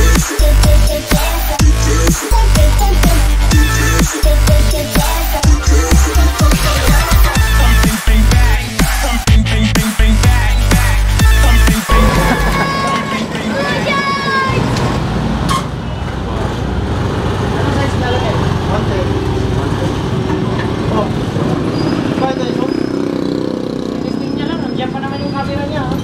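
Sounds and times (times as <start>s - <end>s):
people talking: 11.9s - 14.7s
vehicle engines rumbling: 11.9s - 26.0s.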